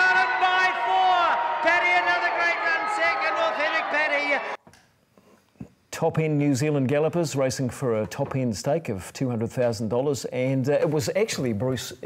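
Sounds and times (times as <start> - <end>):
excited race commentary: 0.0 - 4.6.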